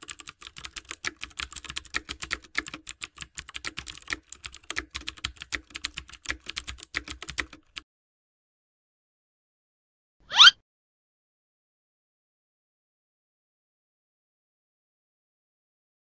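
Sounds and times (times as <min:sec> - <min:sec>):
keyboard typing clicks: 0:00.0 - 0:07.8.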